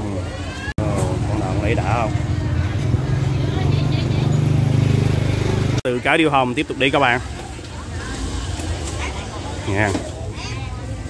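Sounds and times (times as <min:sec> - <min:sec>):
motorbike engine running: 0:00.8 - 0:05.8.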